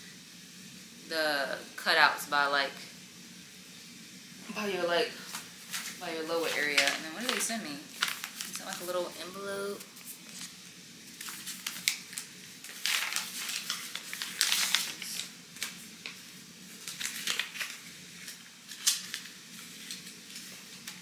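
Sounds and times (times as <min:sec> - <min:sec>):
paper rustling and crinkling: 0:05.2 - 0:21.0.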